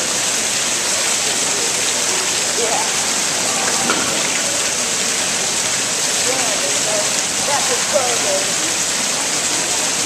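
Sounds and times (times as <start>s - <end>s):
fountain water splashing into basin: 0.0s - 10.0s.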